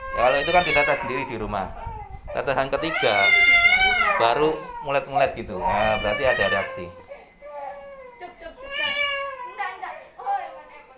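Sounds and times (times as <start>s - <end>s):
infant crying: 0.0s - 10.7s.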